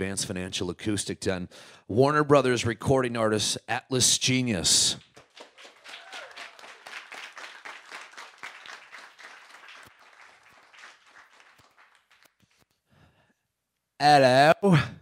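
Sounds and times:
hands clapping: 5.0s - 12.9s.

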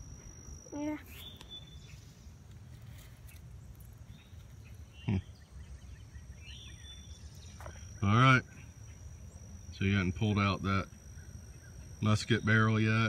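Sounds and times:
high insect drone: 0.0s - 13.0s
bird chirps: 0.9s - 2.4s, 3.1s - 10.1s, 10.8s - 12.9s.

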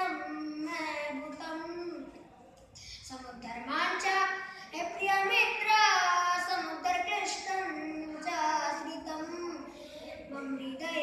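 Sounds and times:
boy singing unaccompanied: 3.2s - 11.0s
breaths between phrases: 4.4s - 4.8s, 9.7s - 10.3s.

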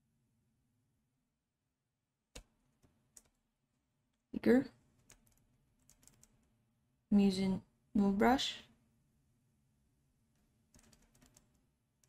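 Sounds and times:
faint computer keyboard clicks: 5.0s - 6.4s.

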